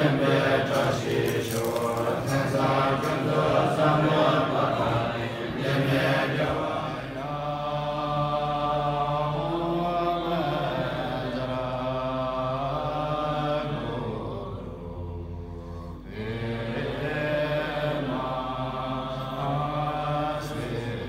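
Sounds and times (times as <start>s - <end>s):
low-voiced chanting: 0.0s - 21.0s.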